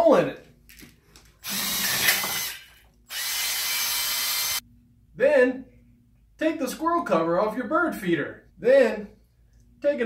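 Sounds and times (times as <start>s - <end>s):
drill boring through metal can: 1.4s - 4.6s.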